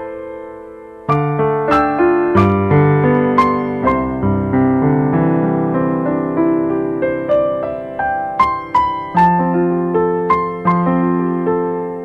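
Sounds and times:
solo grand piano melody: 0.0 - 12.0.

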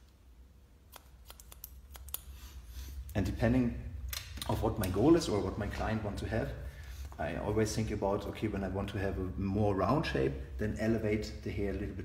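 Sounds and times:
scissors snipping hair: 0.9 - 2.6.

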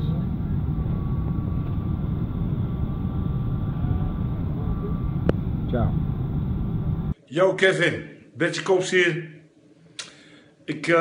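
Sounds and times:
airliner cabin rumble: 0.0 - 7.2
faint steady tones: 0.0 - 7.2.

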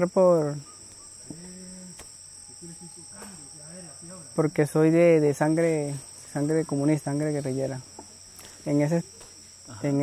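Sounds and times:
insects trilling: 0.0 - 10.0.

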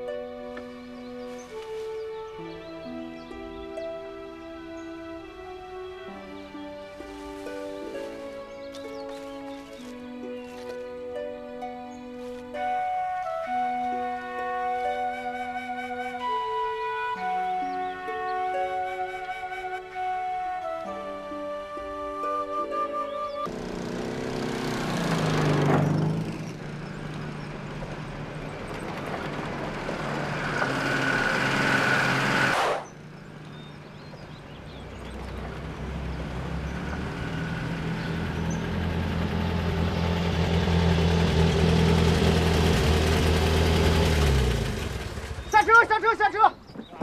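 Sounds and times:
truck engines running: 0.0 - 22.2, 23.0 - 47.0
vehicle passing: 23.5 - 46.2
rising rush of noise: 30.0 - 33.1.

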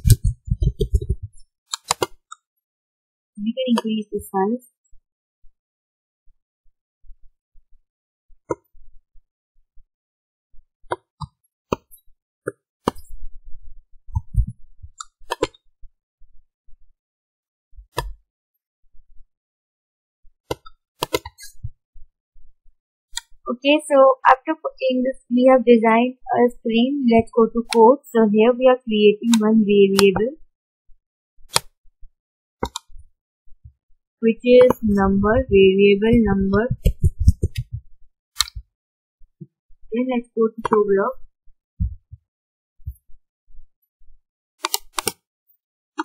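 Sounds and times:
faint low thumps: 0.0 - 1.4, 14.2 - 15.0, 34.4 - 37.9
computer mouse clicks: 0.0 - 2.4, 29.3 - 30.2, 32.6 - 32.9, 38.4 - 38.6, 44.6 - 45.2.

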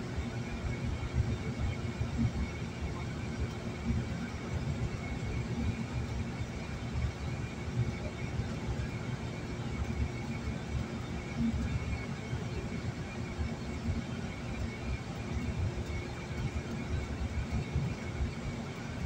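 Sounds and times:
car road and engine rumble: 0.0 - 19.0
faint steady tone: 0.0 - 19.0.

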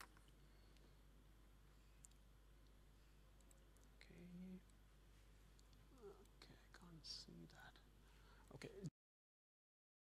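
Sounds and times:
faint clicks: 2.0 - 2.8, 3.4 - 4.8.

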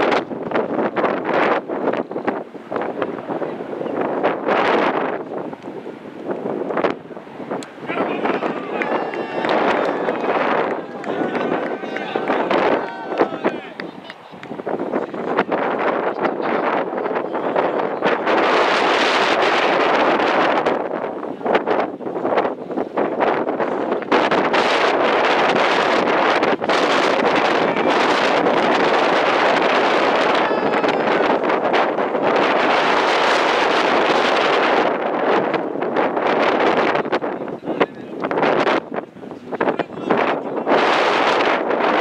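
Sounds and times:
wind buffeting microphone: 0.0 - 42.0.

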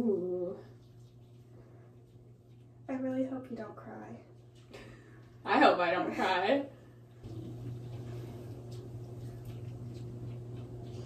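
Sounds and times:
steady low hum: 0.0 - 11.0
wet squishing of hair dye: 0.0 - 11.0.

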